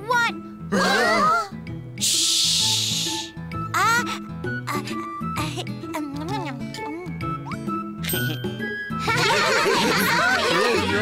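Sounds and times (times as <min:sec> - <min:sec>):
background music: 0:00.0 - 0:11.0
cartoon characters shushing: 0:02.0 - 0:03.3.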